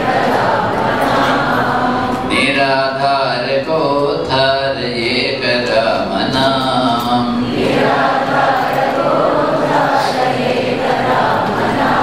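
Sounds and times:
congregation singing in unison: 0.0 - 12.0
man singing: 2.3 - 7.5.

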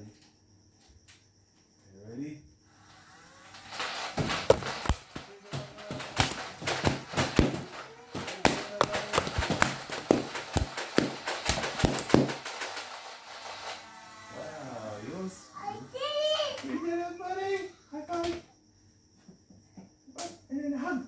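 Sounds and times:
foam-dart blasters clacking: 3.6 - 13.8.

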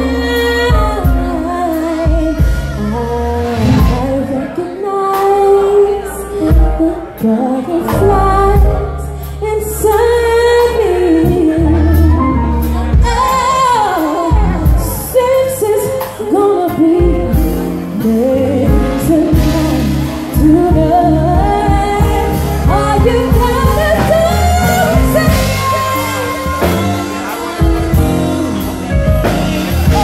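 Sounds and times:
musical accompaniment with bass line: 0.0 - 30.0
woman singing into microphone: 0.0 - 30.0.

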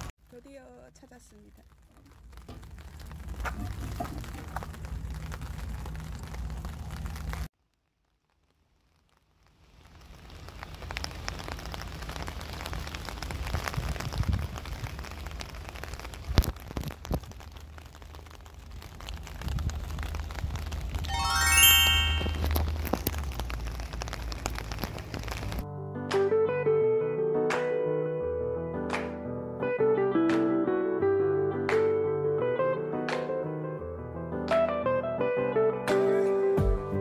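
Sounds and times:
rain: 0.0 - 25.7
wind rumbling on microphone: 12.0 - 21.1
rising chime-like tones: 21.1 - 22.5.

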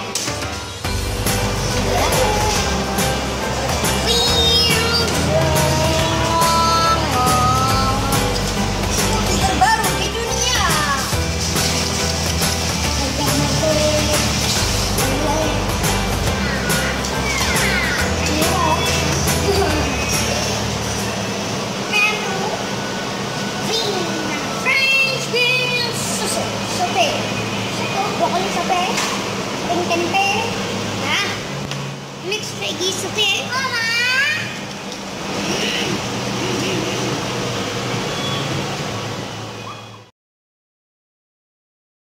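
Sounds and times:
cafe room noise: 0.0 - 40.1
steady low hum: 0.6 - 33.5
child's high voice: 4.0 - 8.1, 16.3 - 19.9, 23.6 - 27.2, 32.3 - 34.6.

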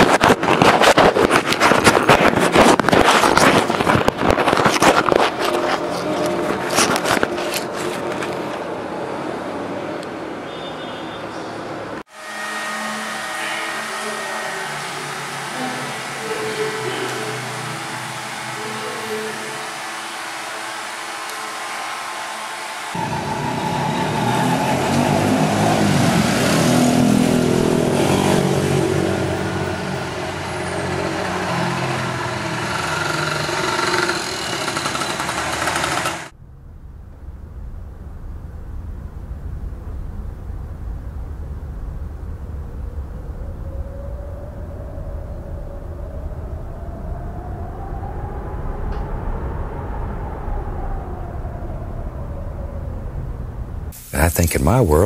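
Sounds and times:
road traffic passing: 0.0 - 36.5
vehicle driving by: 11.6 - 36.3
muffled low rumble: 36.4 - 43.6.

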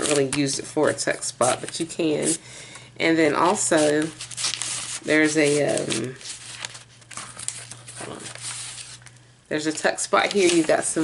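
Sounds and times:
pages rustling and crinkling: 0.0 - 0.7, 3.4 - 9.2, 10.2 - 11.0.

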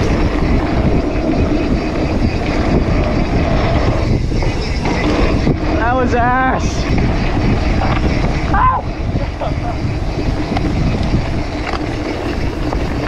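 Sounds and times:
bike rumbling and knocking: 0.0 - 13.0
wind rushing over microphone: 0.0 - 13.0.

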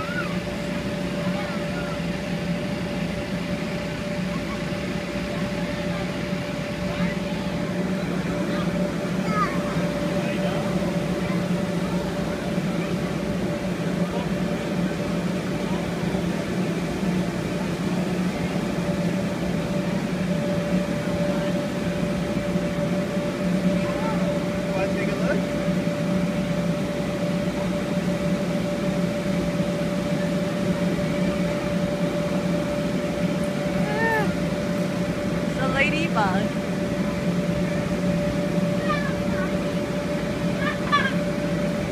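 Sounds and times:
inflation blower motor drone: 0.0 - 41.9.

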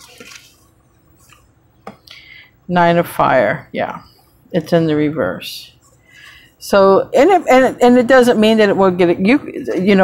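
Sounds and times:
cards sliding and rustling: 0.0 - 1.5.

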